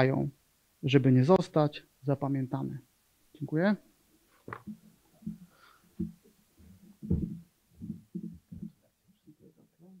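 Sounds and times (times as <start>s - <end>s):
footsteps on hollow wooden stage: 4.4s - 8.9s.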